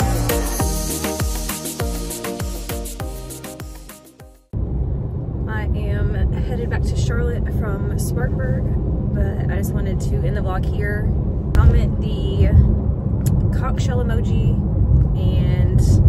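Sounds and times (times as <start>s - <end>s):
music: 0.0s - 4.5s
car rumble from inside cabin: 4.6s - 16.0s.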